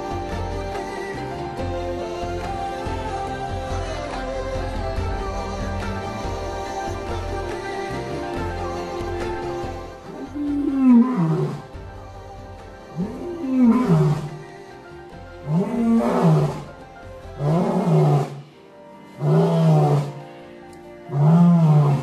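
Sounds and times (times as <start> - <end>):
background music: 0.0 - 22.0
lion roaring: 10.1 - 11.7, 13.0 - 14.4, 15.4 - 16.8, 17.4 - 18.4, 19.2 - 20.2, 21.1 - 22.0.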